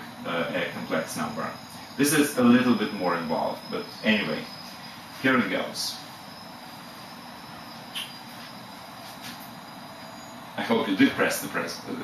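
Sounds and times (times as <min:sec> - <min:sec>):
faint high-pitched whine: 0:00.0 - 0:12.0
steady hiss: 0:00.0 - 0:12.0.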